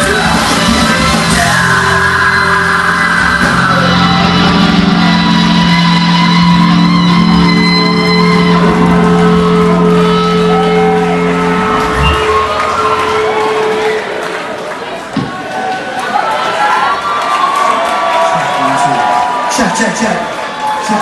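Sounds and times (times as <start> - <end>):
vocals: 0.0 - 5.0
live rock band playing: 0.0 - 14.2.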